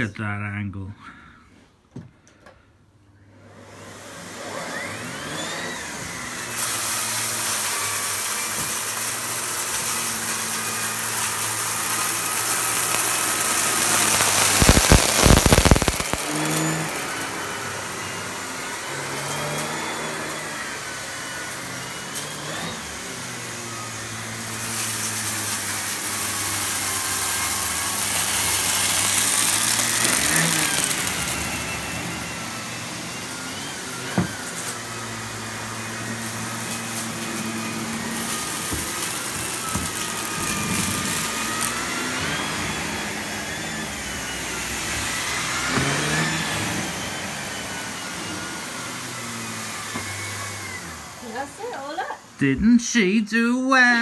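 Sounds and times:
vacuum cleaner running: 3.2s - 54.0s
rough burst of vacuum: 12.0s - 17.3s.

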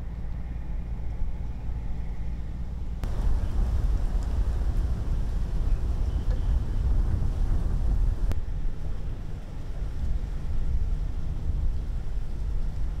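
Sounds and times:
wind buffeting microphone: 3.0s - 13.0s.

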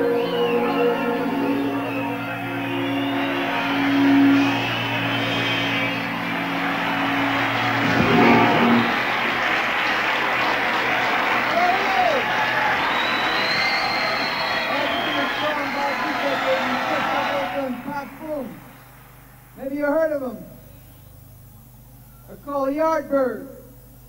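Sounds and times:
whistles: 0.0s - 9.9s, 11.8s - 18.9s
rock band holding a chord: 0.0s - 13.6s
stadium crowd cheering: 0.0s - 19.8s.

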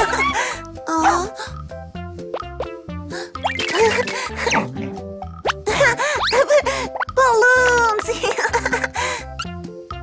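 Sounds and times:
cartoon music with steady beat: 0.0s - 10.0s
rising-pitch cartoon plops: 2.3s - 2.8s.

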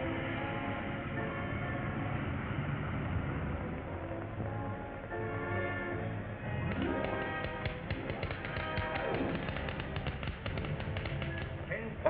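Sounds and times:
film score music: 0.0s - 12.0s
rapid even tapping: 6.6s - 11.7s.

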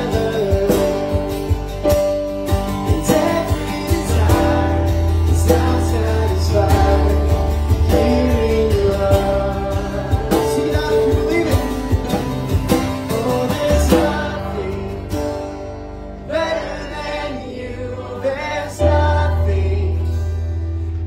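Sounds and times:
cajon beat: 0.0s - 15.5s
acoustic guitars strumming: 0.0s - 21.0s
person singing: 2.8s - 12.0s, 12.9s - 15.3s.

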